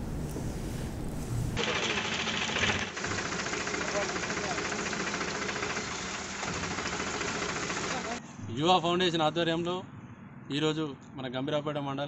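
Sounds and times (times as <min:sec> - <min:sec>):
truck engine running: 0:03.0 - 0:08.2.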